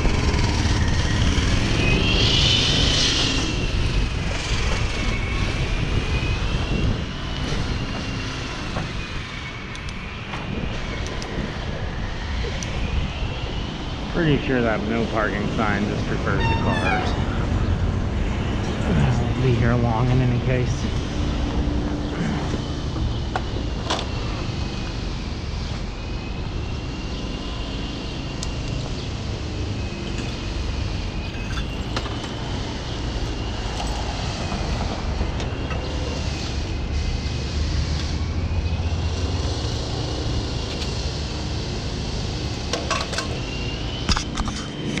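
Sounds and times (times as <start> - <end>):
traffic rumble: 0.0 - 45.0.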